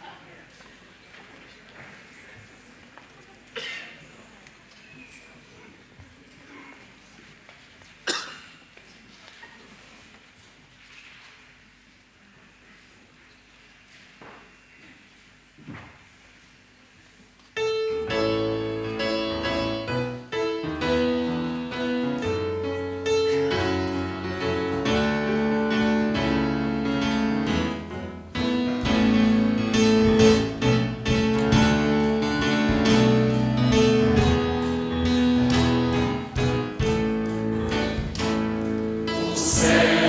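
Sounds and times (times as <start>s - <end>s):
keyboard band playing a hymn: 17.7s - 40.0s.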